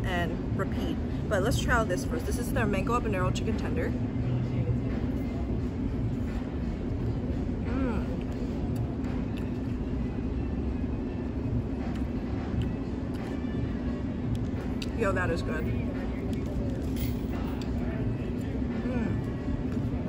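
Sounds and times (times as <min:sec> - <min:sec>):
low hum and rumble: 0:00.0 - 0:20.0.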